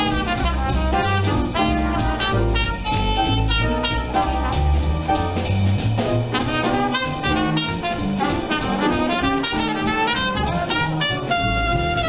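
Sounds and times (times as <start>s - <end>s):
trumpet melody: 0.0s - 5.5s, 6.1s - 12.0s
piano: 0.0s - 12.0s
upright bass: 0.0s - 12.0s.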